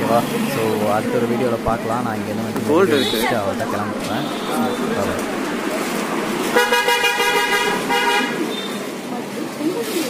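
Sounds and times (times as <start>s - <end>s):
voices: 0.0s - 6.6s
street noise: 0.0s - 10.0s
vehicle horn honking: 4.1s - 5.2s, 6.5s - 8.8s.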